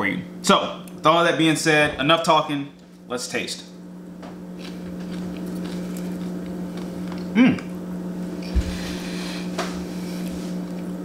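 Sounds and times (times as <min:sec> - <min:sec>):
chewing popcorn: 0:04.5 - 0:07.8, 0:10.2 - 0:11.0.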